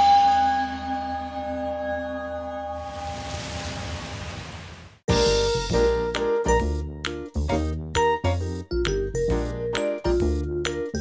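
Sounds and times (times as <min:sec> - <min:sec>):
ambient music ringing tones: 0:00.0 - 0:03.2.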